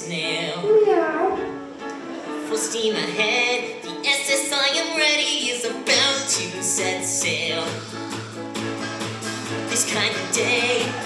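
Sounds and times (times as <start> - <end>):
voice gliding down in pitch: 0.6 - 1.6
pit band playing: 0.6 - 2.6, 5.8 - 11.0.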